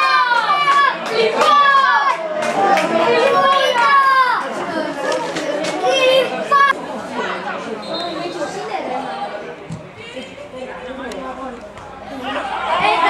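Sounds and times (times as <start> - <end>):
people shouting and calling out: 0.0 - 13.0.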